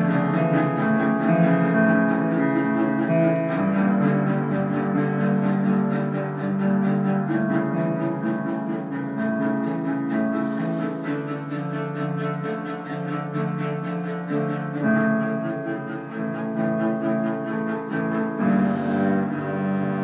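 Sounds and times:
bowed cello melody: 0:00.0 - 0:20.0
quick pulsing accompaniment: 0:00.0 - 0:20.0.

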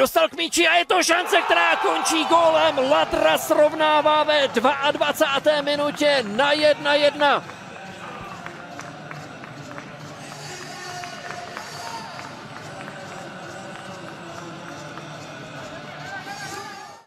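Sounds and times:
distant shouts and voices: 0:00.9 - 0:08.5.

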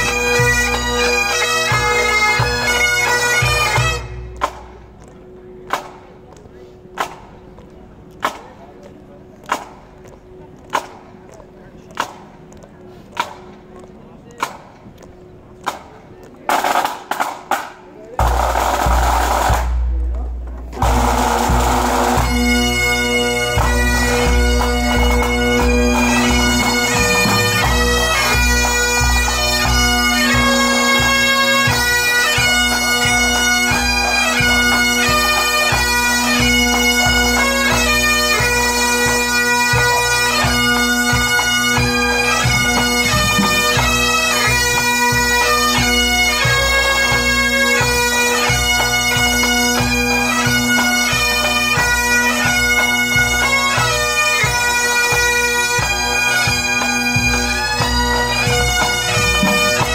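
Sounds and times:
bagpipes playing: 0:00.0 - 0:10.8, 0:18.2 - 0:59.9
drum roll: 0:16.5 - 0:22.4
snare tenor and bass drums: 0:16.5 - 0:59.9.

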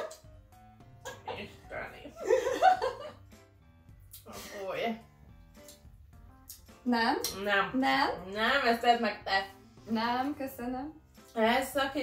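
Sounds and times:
quiet background music: 0:00.0 - 0:12.0
women laughing: 0:02.2 - 0:03.2.

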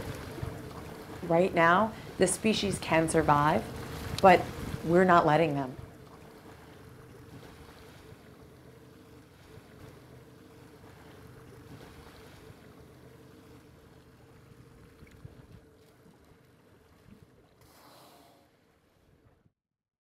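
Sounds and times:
boat engine hum: 0:00.0 - 0:19.5
water noise: 0:00.0 - 0:19.5
wind: 0:00.0 - 0:19.5.

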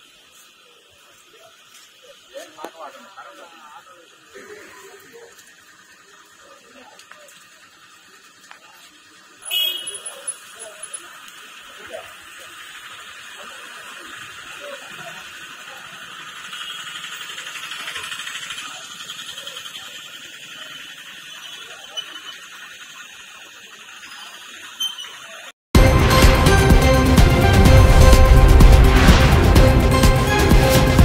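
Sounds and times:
steady high hiss: 0:00.0 - 0:25.5
faint indistinct voices: 0:00.5 - 0:22.6.

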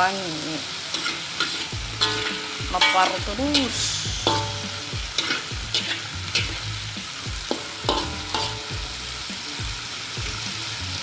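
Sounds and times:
food sizzling in hot oil: 0:00.0 - 0:11.0
metal spatula scraping a wok: 0:00.6 - 0:09.1.

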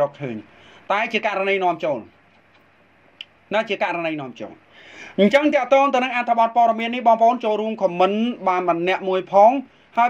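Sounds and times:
person speaking: 0:00.0 - 0:02.6, 0:03.2 - 0:10.0
faint hiss: 0:00.0 - 0:06.8, 0:07.8 - 0:10.0.

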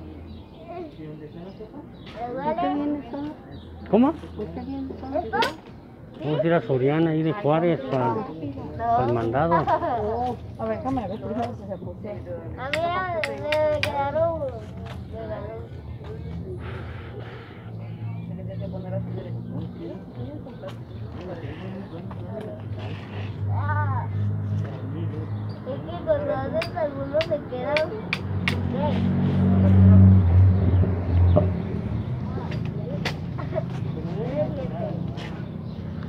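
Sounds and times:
scattered voices: 0:00.0 - 0:36.0
vehicle engine rumble: 0:08.5 - 0:36.0.

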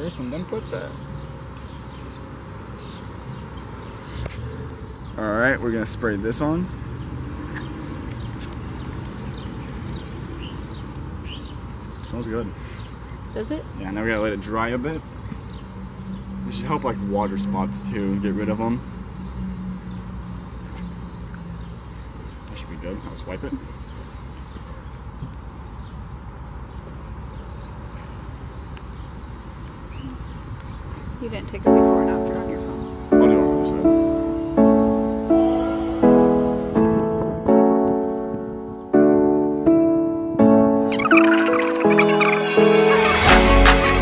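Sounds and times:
birds chirping: 0:00.0 - 0:44.0.

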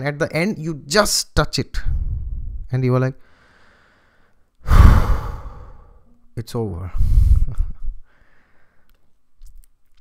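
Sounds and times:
man sighing loudly: 0:04.6 - 0:06.0.

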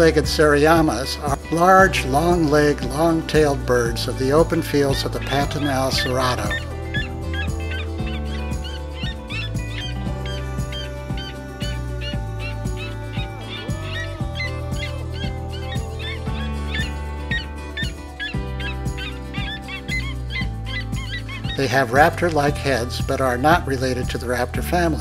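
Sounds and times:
background music with held bass: 0:00.0 - 0:25.0
birds yelping rapidly: 0:04.5 - 0:22.8.

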